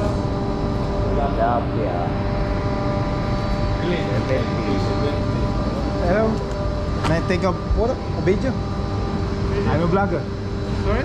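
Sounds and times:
machinery hum with held tones: 0.0s - 11.0s.

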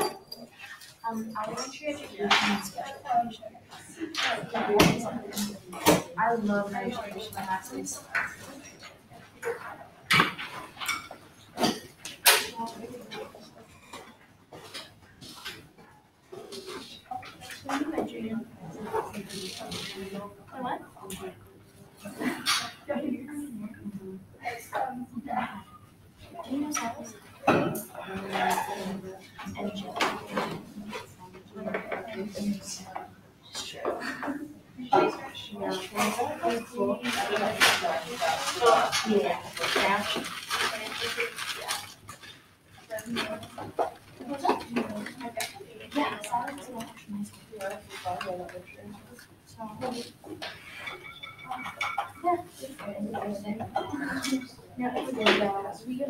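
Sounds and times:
indistinct voices: 0.0s - 14.1s, 16.3s - 42.2s, 42.9s - 56.0s
low voices talking: 42.8s - 56.0s.

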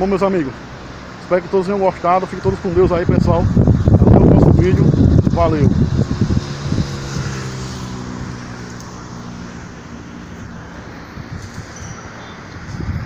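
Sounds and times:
faint outdoor wind: 0.0s - 13.0s
vehicle engine hum: 0.0s - 13.0s.

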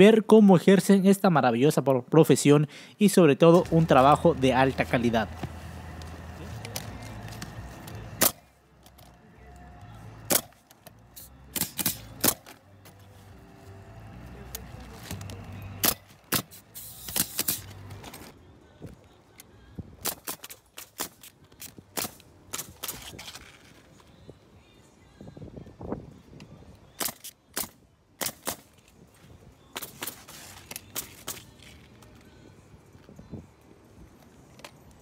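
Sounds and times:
nail gun firing: 8.1s - 8.4s, 10.3s - 10.6s, 11.5s - 12.6s, 15.8s - 17.7s, 20.0s - 23.2s, 27.0s - 28.8s.

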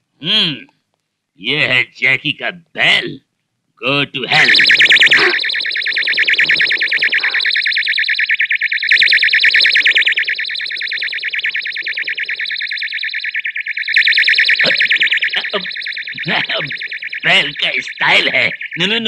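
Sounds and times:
electronic doorbell trilling: 4.4s - 18.8s.

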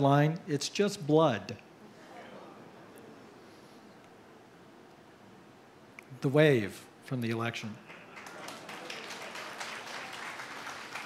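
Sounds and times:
audience applauding: 7.8s - 11.0s.

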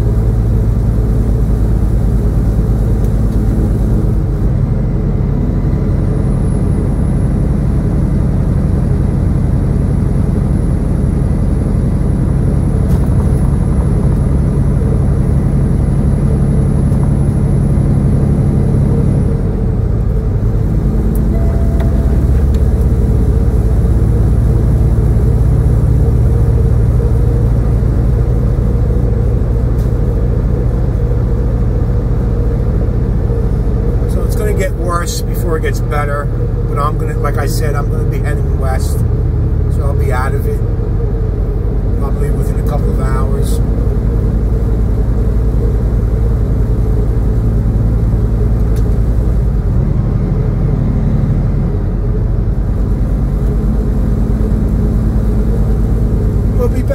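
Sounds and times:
diesel truck engine droning: 0.0s - 56.9s
road noise: 0.0s - 56.9s.

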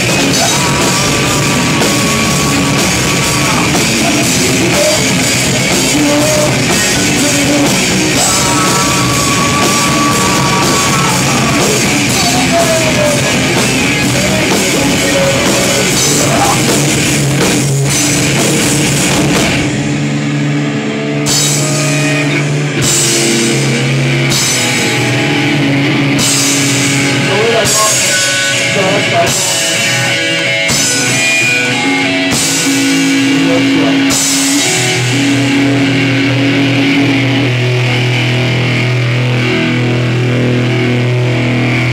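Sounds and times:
bass guitar: 0.0s - 41.9s
drum kit: 0.0s - 41.9s
electric guitars holding chords: 0.0s - 41.9s.

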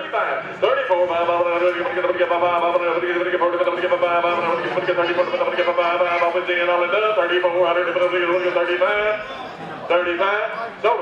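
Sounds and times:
auctioneer chanting bids: 0.0s - 9.3s.

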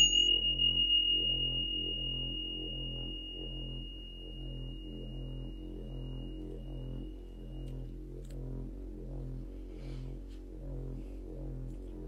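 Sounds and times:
meditation bell ringing: 0.0s - 8.0s
soft ambient music: 0.0s - 12.0s.

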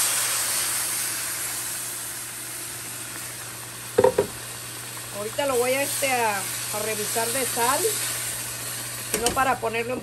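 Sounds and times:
liquid sizzling in a pot: 0.0s - 10.0s.

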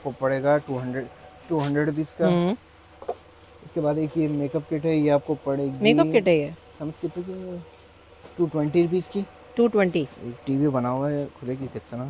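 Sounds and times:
low shop background noise: 0.0s - 12.0s
person talking: 1.6s - 2.6s, 5.6s - 7.3s.

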